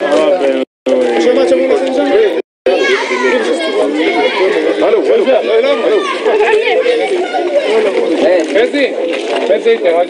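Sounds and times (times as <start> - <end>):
people arguing in raised voices: 0.0 - 10.0.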